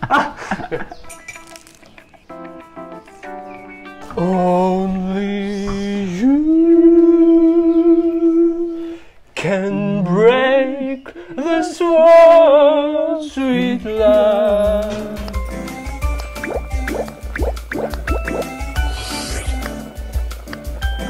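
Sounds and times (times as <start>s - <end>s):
second man singing: 4.1s - 8.7s
man singing held notes: 9.4s - 15.4s
music with bass beat: 15.4s - 21.0s.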